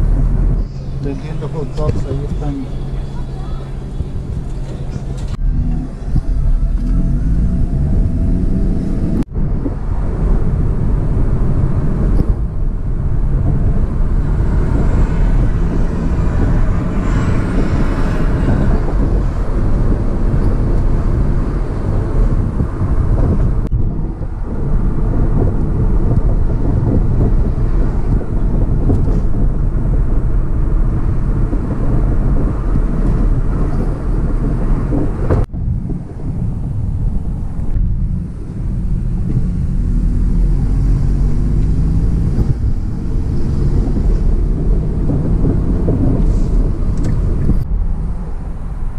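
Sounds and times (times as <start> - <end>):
car road and engine rumble: 0.0 - 48.9.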